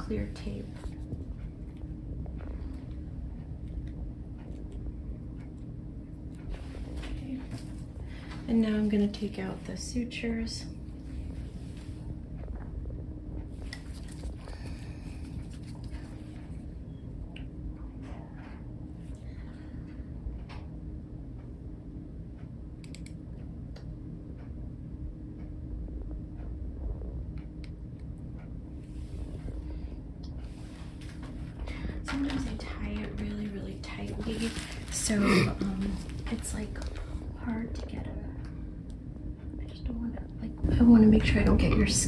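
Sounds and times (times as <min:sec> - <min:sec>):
room equipment humming: 0:00.0 - 0:42.0.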